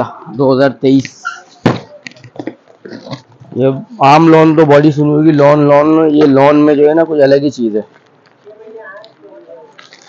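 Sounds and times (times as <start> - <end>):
plastic wrapping rustling: 6.1 - 10.0.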